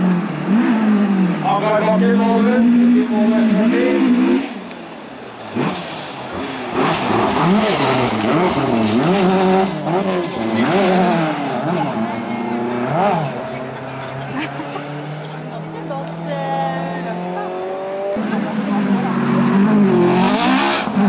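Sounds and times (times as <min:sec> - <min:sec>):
race car engine revving: 0:00.0 - 0:21.0.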